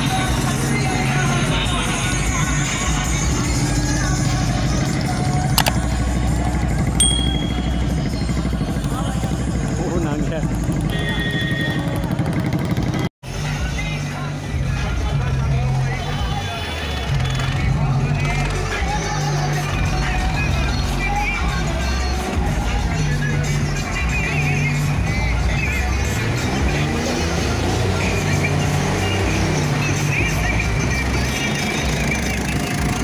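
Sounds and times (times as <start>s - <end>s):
loud music with singing: 0.0s - 6.5s, 13.2s - 33.0s
road traffic: 0.0s - 33.0s
tractor engines: 0.0s - 33.0s.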